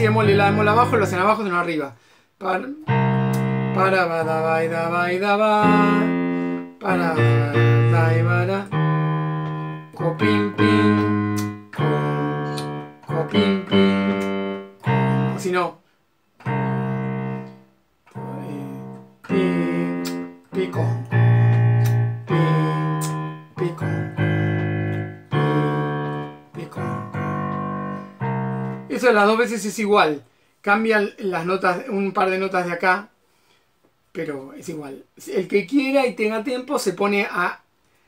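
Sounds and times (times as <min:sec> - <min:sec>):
piano playing slow chords: 0:00.0 - 0:01.4, 0:02.9 - 0:15.6, 0:16.4 - 0:29.0.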